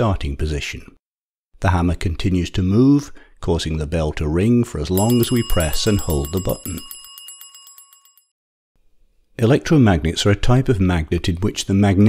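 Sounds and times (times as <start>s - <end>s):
electric doorbell ringing: 5.0s - 8.3s.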